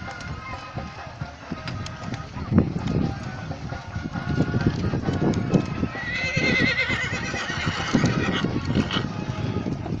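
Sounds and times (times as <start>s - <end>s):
hoofbeats on dirt: 0.0s - 10.0s
horse whinnying: 5.9s - 9.4s.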